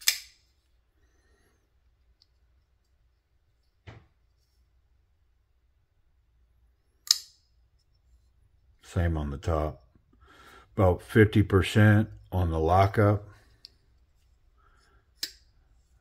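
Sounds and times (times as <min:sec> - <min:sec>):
folding knife blade clicking open: 0:00.0 - 0:00.3.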